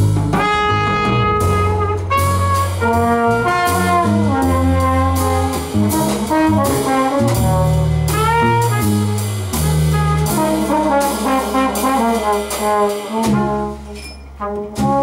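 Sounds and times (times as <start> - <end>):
bass line: 0.0 - 15.0
trumpet and trombone notes: 0.0 - 15.0.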